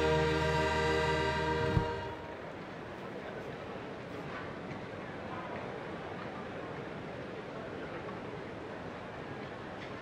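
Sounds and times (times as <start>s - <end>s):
orchestra holding a chord: 0.0s - 2.5s.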